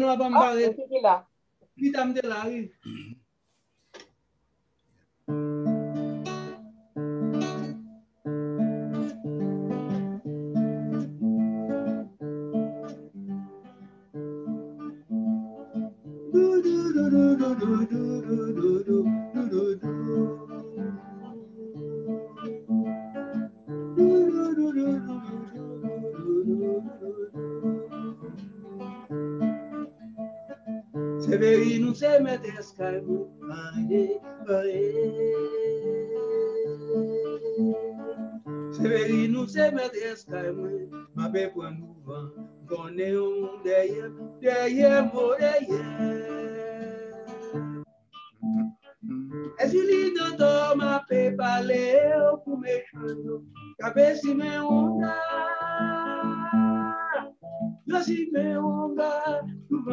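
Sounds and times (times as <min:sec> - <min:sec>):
acoustic guitar strumming: 0:05.3 - 0:59.9
man singing: 0:16.3 - 0:22.0, 0:23.9 - 0:28.4, 0:31.2 - 0:47.6, 0:49.0 - 0:59.9.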